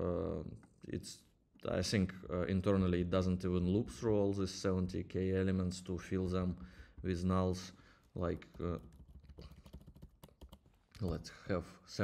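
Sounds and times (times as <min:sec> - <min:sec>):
computer keyboard typing: 0:08.0 - 0:11.3.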